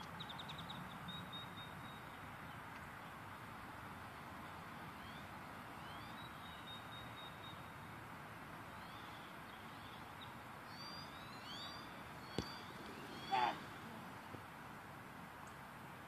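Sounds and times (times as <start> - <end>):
low rush of background noise: 0.0 - 16.0
chirping bird calls: 8.9 - 14.0.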